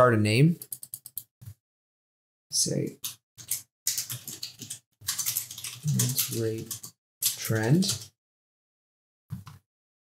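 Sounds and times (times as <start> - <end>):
man speaking: 0.0 - 0.6, 5.8 - 6.7, 7.4 - 8.0
keyboard typing clicks: 0.6 - 1.3, 3.0 - 8.1.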